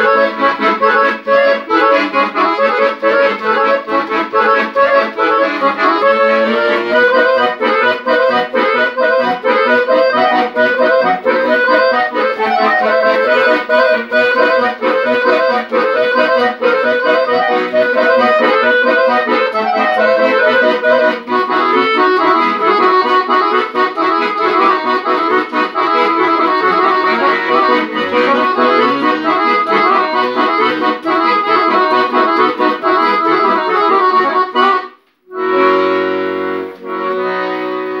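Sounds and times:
button accordions playing a tune: 0.0 - 38.0.

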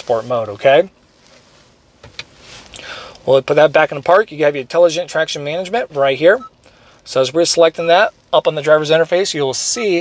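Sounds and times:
soft rustling: 0.0 - 2.8.

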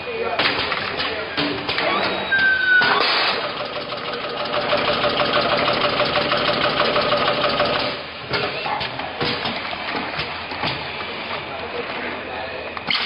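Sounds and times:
machine clattering: 2.9 - 8.0.

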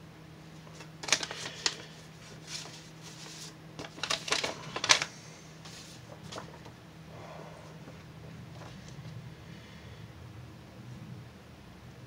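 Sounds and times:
faint steady hum: 0.0 - 12.0
paper envelope rustling: 0.6 - 6.7.

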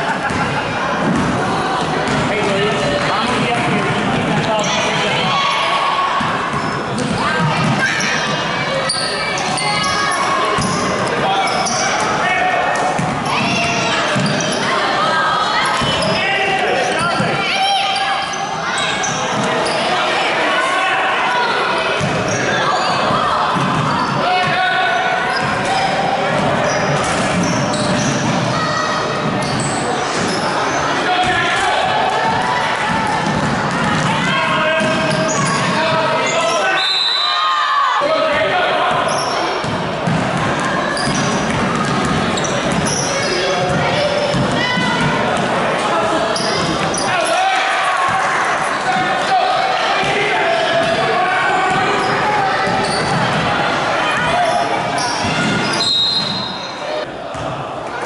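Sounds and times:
voices talking and calling out: 0.0 - 58.0.

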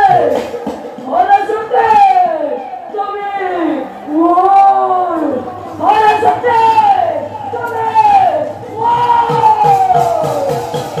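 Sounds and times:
drums beating: 0.0 - 11.0.

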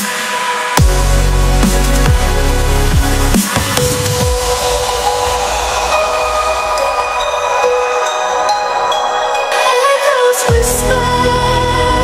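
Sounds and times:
synth pad chords: 0.8 - 9.7.

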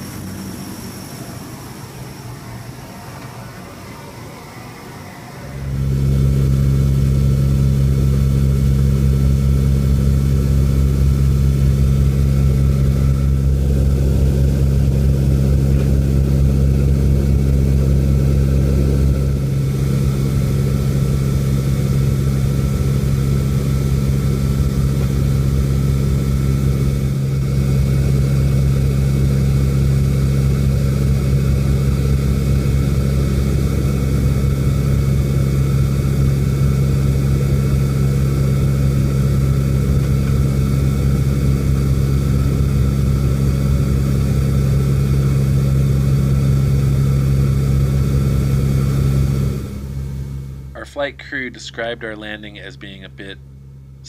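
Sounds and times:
turboprop engines droning: 0.0 - 54.0.

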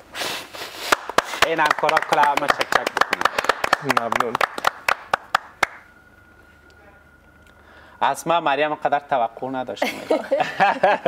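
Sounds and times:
people clapping: 0.8 - 6.0
faint steady high tone: 3.8 - 11.0.

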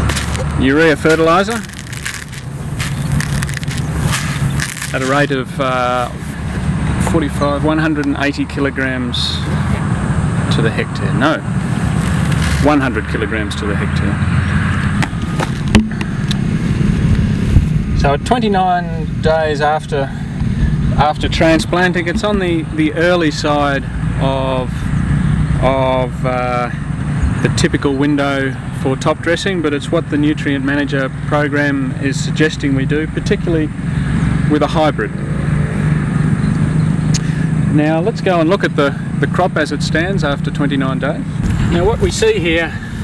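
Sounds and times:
hands in plastic bucket of granules: 0.0 - 5.3, 12.0 - 12.8
low engine hum: 0.0 - 43.0
wind rumble on microphone: 14.1 - 19.3.

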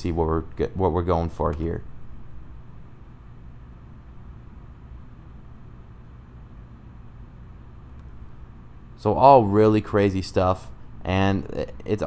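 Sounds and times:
low hum with faint hiss: 0.0 - 12.0
faint click: 7.9 - 8.2.

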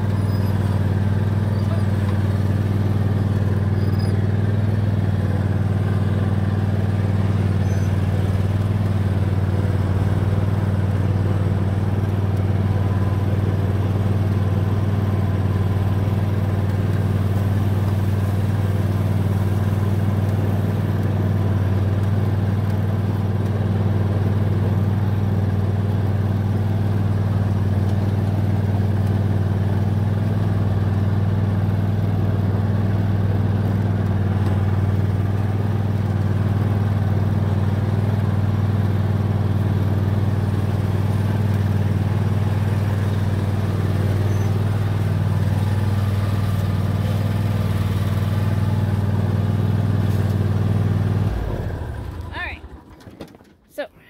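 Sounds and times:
lawn tractor engine droning: 0.0 - 54.0.

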